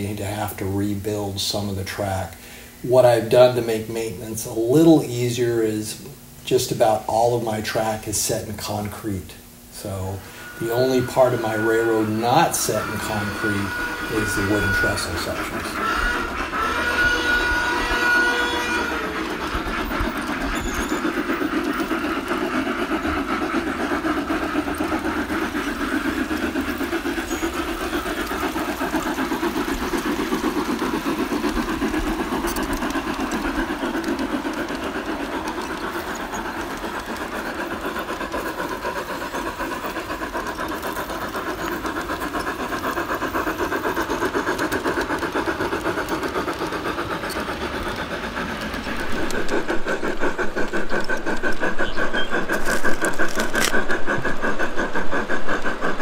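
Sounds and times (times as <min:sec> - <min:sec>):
model train running: 0:00.0 - 0:56.0
wheels clicking over rails: 0:00.0 - 0:56.0.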